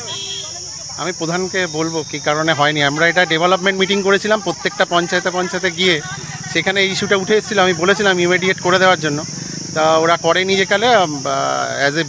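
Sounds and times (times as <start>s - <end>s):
crickets chirring: 0.0s - 12.0s
man talking: 1.0s - 12.0s.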